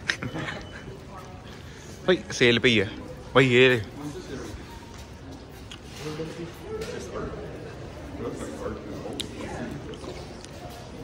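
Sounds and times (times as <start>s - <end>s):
faint indistinct voices: 0.0s - 11.0s
steady room noise: 0.0s - 11.0s.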